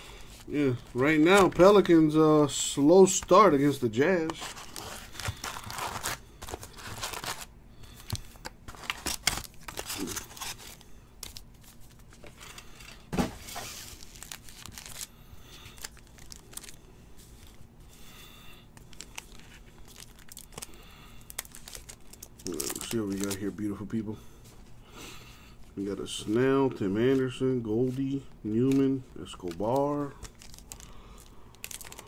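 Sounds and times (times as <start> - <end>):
foil card packs crinkling: 0.0 - 24.1, 25.6 - 32.0
wrapper being torn open: 8.3 - 12.0, 13.8 - 16.8, 18.8 - 23.4, 28.6 - 32.0.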